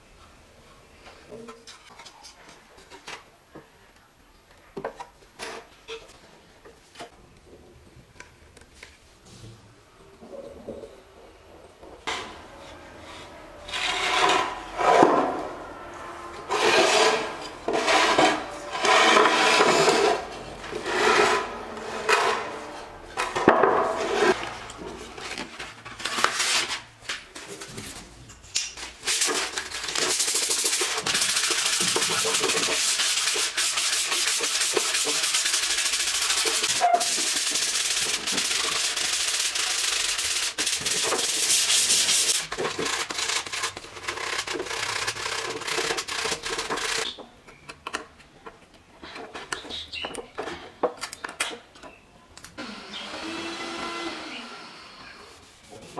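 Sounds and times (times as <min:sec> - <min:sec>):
sandpaper rubbing on wood: 0:29.1 - 0:47.1.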